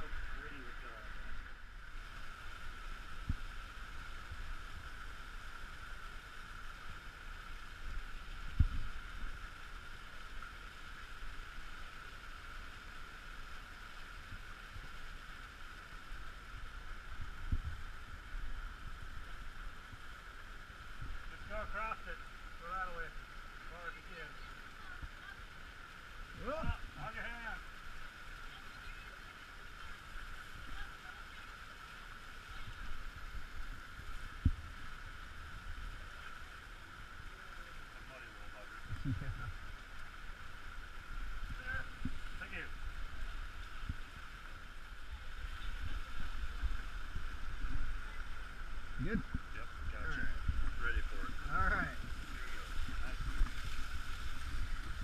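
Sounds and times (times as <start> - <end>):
flood water rushing: 0.0 - 55.0.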